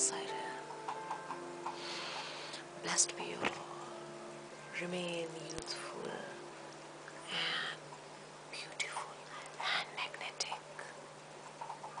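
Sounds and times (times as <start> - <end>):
steady low hum: 0.0 - 12.0
woman whispering: 2.8 - 3.9, 7.3 - 7.8, 8.5 - 11.0.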